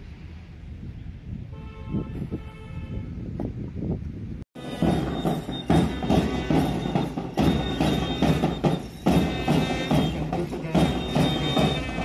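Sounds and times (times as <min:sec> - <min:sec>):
held horn note: 0:04.6 - 0:12.0.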